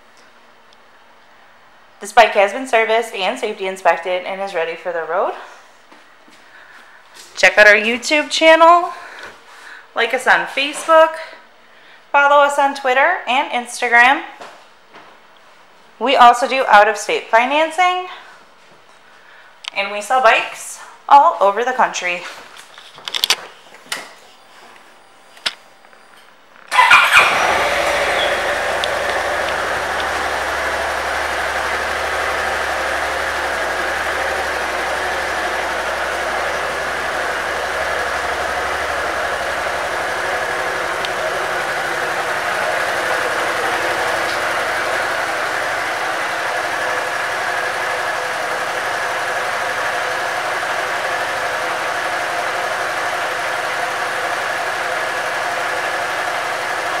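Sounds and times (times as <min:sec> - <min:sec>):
motorcycle engine starting and idling: 0:26.7 - 0:57.0.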